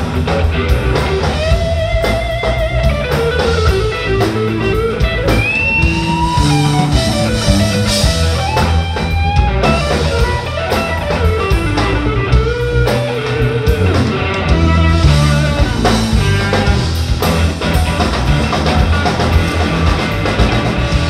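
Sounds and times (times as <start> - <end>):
bass guitar: 0.0 - 21.0
drum kit: 0.0 - 21.0
electric guitar lead lines: 0.0 - 21.0.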